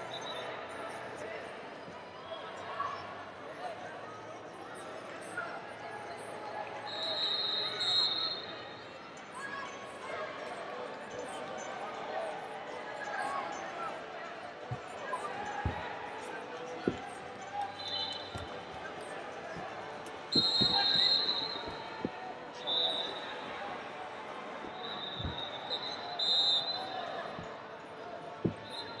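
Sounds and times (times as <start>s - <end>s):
murmur of voices: 0.0s - 29.0s
referee whistle blasts: 6.9s - 8.6s, 17.7s - 18.5s, 20.3s - 23.4s, 24.7s - 27.5s, 28.5s - 29.0s
dull thumps: 15.6s - 15.9s, 20.3s - 22.2s, 25.2s - 25.5s, 28.4s - 28.7s.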